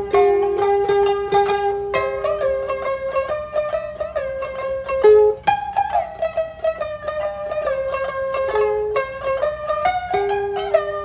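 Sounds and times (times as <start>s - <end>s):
plucked string instruments: 0.0s - 11.0s.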